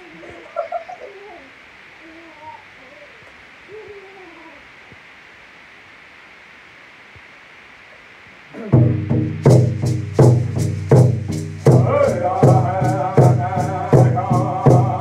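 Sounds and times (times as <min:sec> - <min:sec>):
faint steady hiss: 0:00.0 - 0:15.0
man singing softly: 0:11.7 - 0:15.0.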